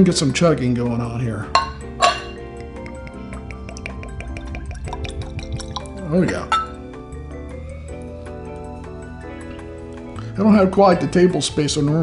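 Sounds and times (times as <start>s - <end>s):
background music: 0.0s - 12.0s
liquid glugging from bottle: 2.9s - 6.8s.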